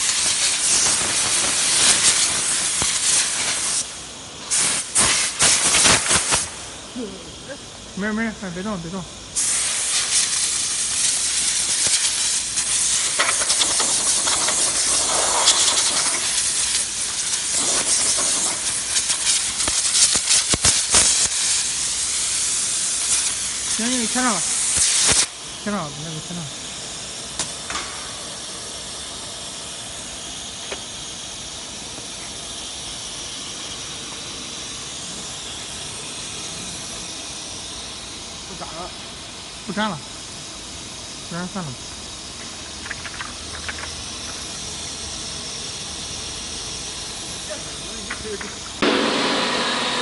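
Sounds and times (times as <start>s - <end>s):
compressed air gun hissing: 0.0s - 8.5s, 9.2s - 50.0s
steady machine noise: 10.6s - 50.0s.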